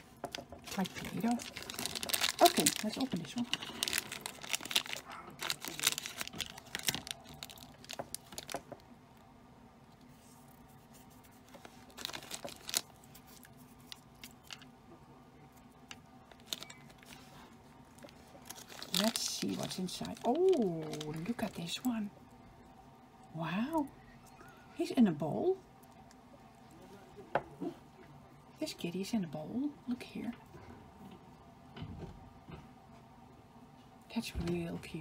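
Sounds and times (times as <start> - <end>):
plastic wrapper crinkling and tearing: 0.6 - 8.8, 10.5 - 14.7, 15.9 - 22.0.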